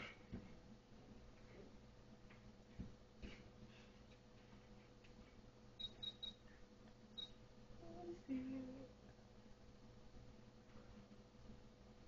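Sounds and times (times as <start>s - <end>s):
faint electronic hum: 0.0s - 12.0s
ultrasound machine beeps: 5.8s - 6.4s, 7.2s - 7.4s.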